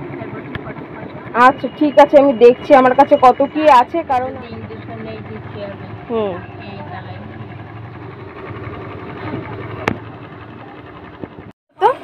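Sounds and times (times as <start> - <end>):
electric fan humming: 0.0 - 12.0.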